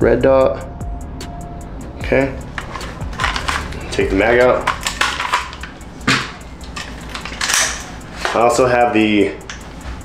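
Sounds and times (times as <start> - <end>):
rifle magazine release clicks: 4.7 - 8.0.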